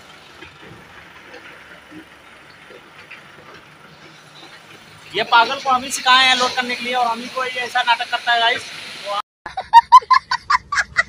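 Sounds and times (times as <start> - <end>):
child laughing hard: 9.5 - 11.0.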